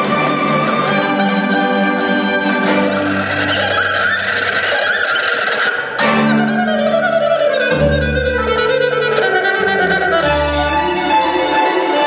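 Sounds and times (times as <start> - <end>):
orchestral music: 0.0 - 12.0
horse whinny: 3.0 - 5.9.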